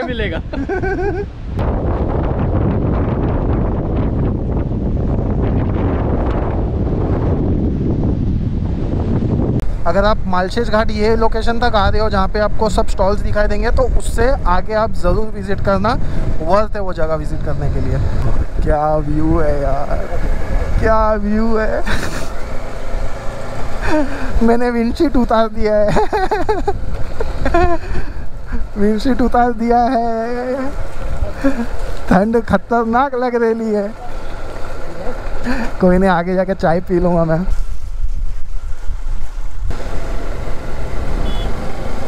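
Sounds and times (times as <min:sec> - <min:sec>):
wind buffeting microphone: 0:00.0 - 0:33.2, 0:33.8 - 0:42.0.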